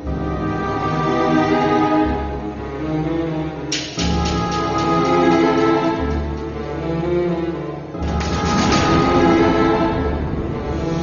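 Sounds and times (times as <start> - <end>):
background music: 0.0 - 11.0
loud rushing rumbling whoosh: 8.2 - 11.0.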